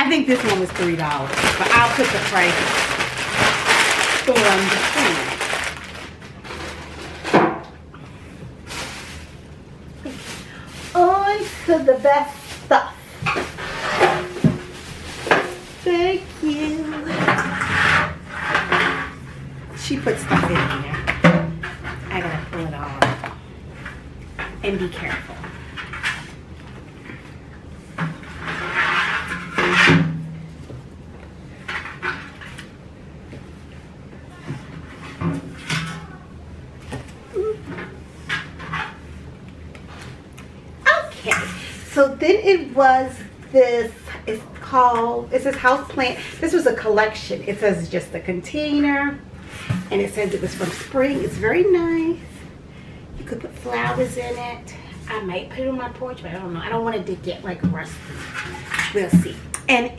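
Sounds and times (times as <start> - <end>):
hand rustling artificial flowers: 0.0 - 7.2, 8.2 - 17.2
faint rustles: 8.0 - 19.4
scraping against metal planter: 17.0 - 19.5.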